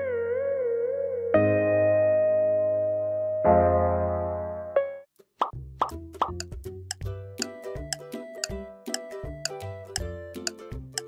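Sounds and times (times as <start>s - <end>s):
upbeat background music: 5.4s - 11.0s.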